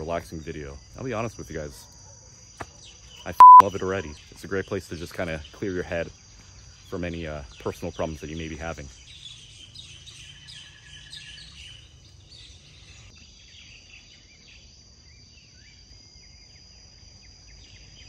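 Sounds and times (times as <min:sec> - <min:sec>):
bird chirps: 0:02.8 - 0:05.7, 0:06.5 - 0:14.6.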